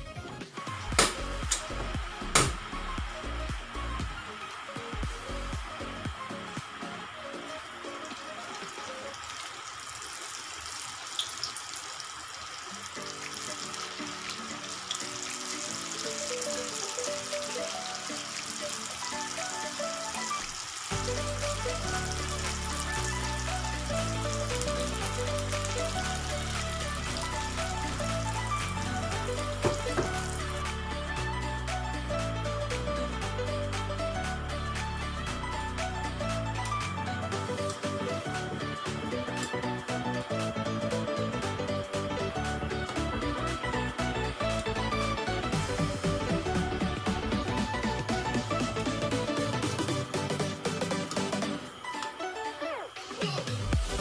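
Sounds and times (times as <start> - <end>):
background music: 0.0 - 9.8, 12.7 - 54.0
rolls sizzling in frying oil: 0.0 - 54.0.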